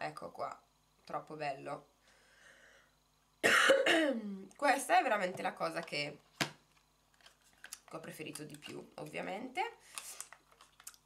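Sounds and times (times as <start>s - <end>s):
woman coughing: 3.4s - 4.3s.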